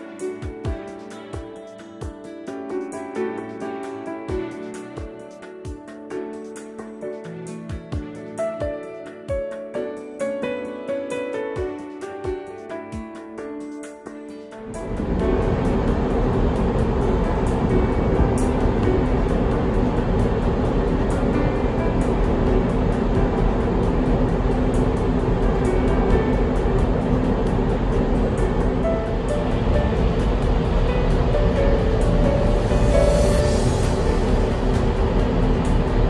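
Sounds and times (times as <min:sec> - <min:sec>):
faint soft music: 0:00.0 - 0:36.0
ship running and wake: 0:14.6 - 0:36.0.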